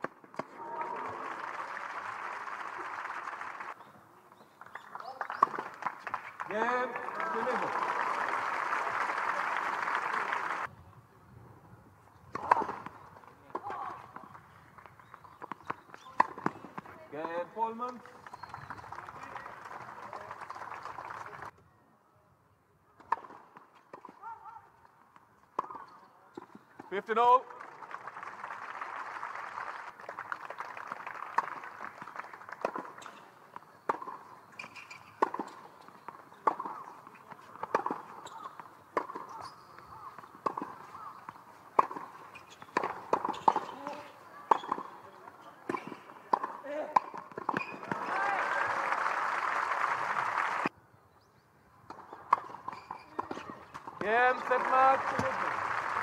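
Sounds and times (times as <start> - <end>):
crowd applause: 0.4 - 3.8, 5.0 - 10.7, 18.2 - 21.5, 27.5 - 32.7, 47.8 - 50.7, 54.2 - 56.0
ball hitting racket: 33.9 - 35.6, 36.4 - 36.9, 37.6 - 39.5, 40.2 - 44.9, 45.7 - 48.0
ball bouncing: 33.9 - 45.0
players' footsteps: 51.9 - 56.0.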